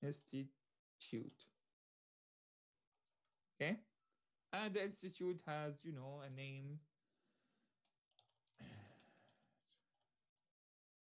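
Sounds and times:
faint keyboard clicks: 7.8s - 9.5s
breathy sigh: 8.6s - 9.4s.

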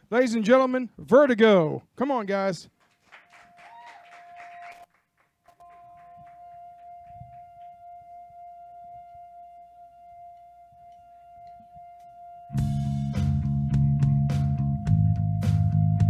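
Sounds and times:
quiet droning musical note: 5.6s - 14.2s.

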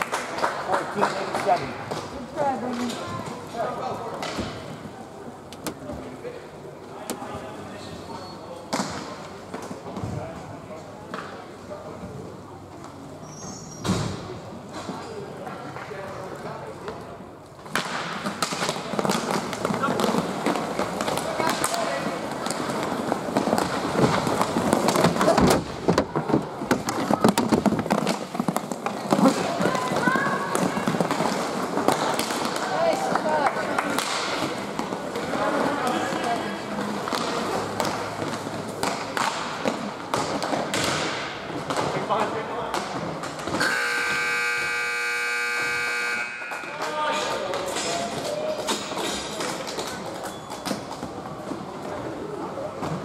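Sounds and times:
hockey sticks and puck clacking: 0.0s - 6.1s, 8.1s - 10.2s, 11.0s - 11.5s, 14.7s - 53.0s.

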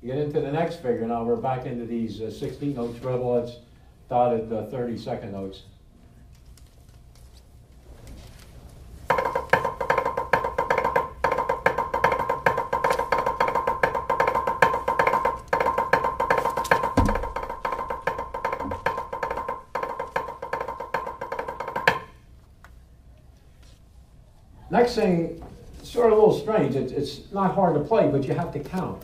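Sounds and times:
drumsticks on practice pad: 9.1s - 22.2s.

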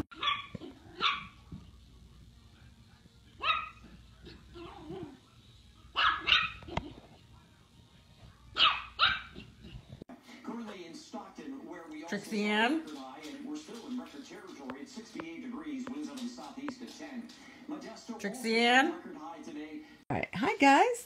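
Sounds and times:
dog barking: 0.1s - 1.4s, 3.4s - 5.2s, 5.9s - 6.9s, 8.5s - 9.5s.

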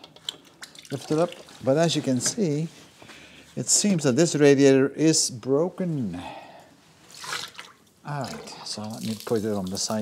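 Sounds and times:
liquid dripping: 0.0s - 1.7s, 7.1s - 10.0s.

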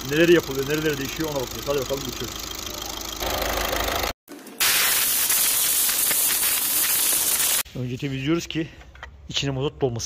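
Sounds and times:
compressed air blow gun hissing: 4.6s - 7.7s.

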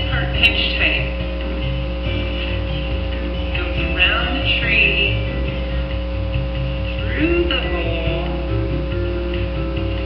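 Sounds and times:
background music with bass: 0.0s - 10.0s
steady electrical hum: 0.0s - 10.0s.

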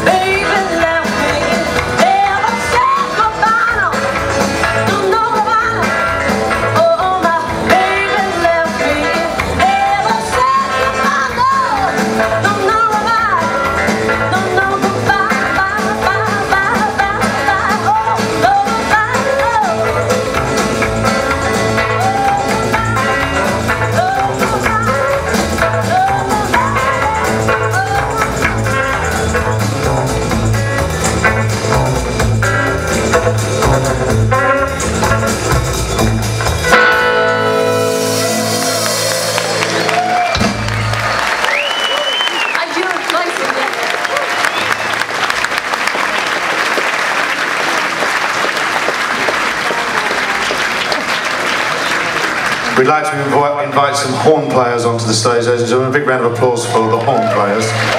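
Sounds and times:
audience applause and cheering: 0.0s - 36.7s, 37.4s - 55.1s, 56.2s - 57.9s
rockabilly band playing: 0.0s - 57.9s
whistle from audience: 40.2s - 42.7s, 44.3s - 45.1s.

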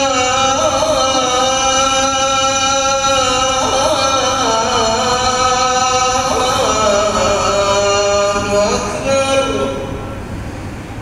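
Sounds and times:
man chanting: 0.0s - 10.2s.

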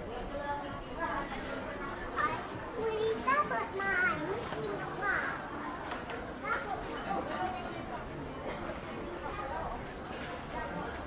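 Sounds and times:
chatter of shoppers: 0.0s - 11.0s
young children talking: 1.1s - 7.4s.

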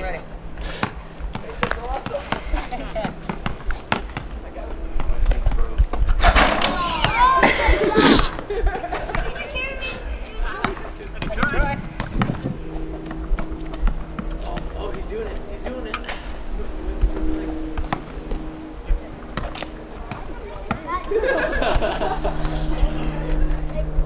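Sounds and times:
faint steady hum: 0.0s - 24.0s
basketball bouncing on asphalt: 0.8s - 5.2s, 10.5s - 14.3s, 19.3s - 20.9s
children's voices: 6.6s - 10.7s, 20.0s - 24.0s.

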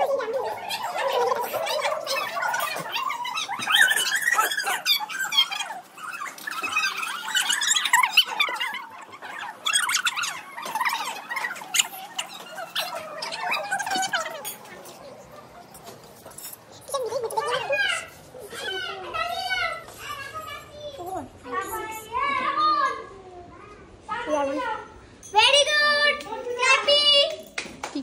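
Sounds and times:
children talking and calling out: 0.0s - 28.0s.

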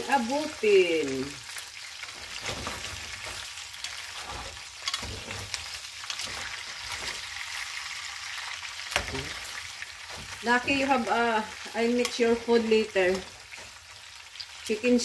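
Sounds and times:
oil sizzling in a saucepan: 0.0s - 15.0s.

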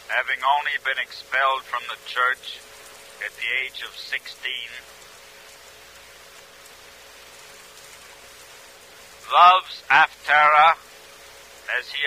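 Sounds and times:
faint steady hum: 0.0s - 12.0s
recording hiss: 0.0s - 12.0s.

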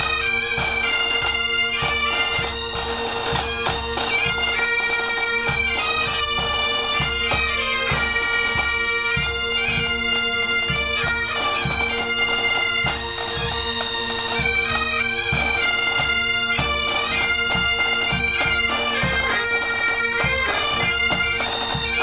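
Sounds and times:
bagpipes playing: 0.0s - 22.0s.

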